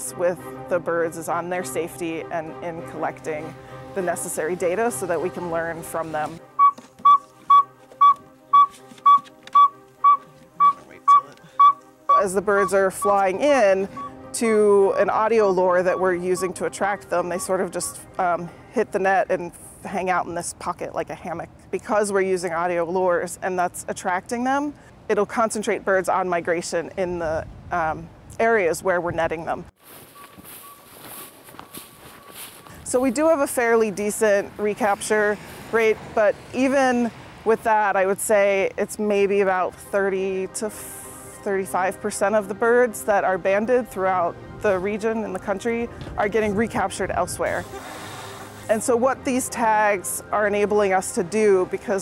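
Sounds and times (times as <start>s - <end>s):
owl tooting call: 6.6s - 13.1s
cloth bags rustling: 29.8s - 33.0s
shuffling steps: 29.8s - 33.8s.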